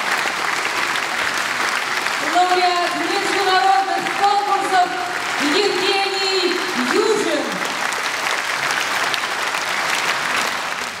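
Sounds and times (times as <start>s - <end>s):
audience applauding: 0.0s - 11.0s
person speaking: 2.2s - 7.6s.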